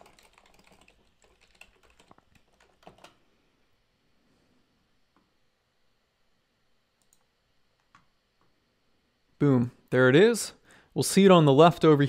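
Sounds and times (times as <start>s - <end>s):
typing on a keyboard: 0.0s - 3.2s.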